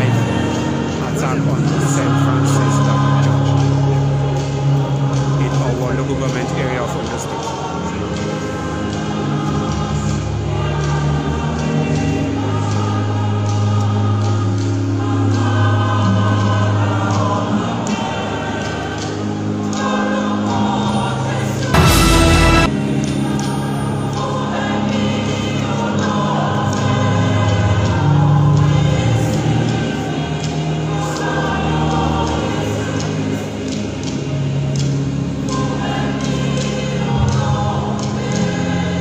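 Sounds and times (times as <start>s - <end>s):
choir singing a hymn: 0.0s - 39.0s
steady low drone note: 21.7s - 23.0s.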